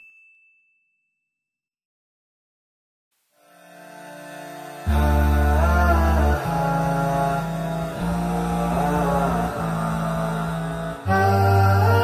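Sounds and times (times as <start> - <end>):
high ringing ding: 0.0 - 1.5.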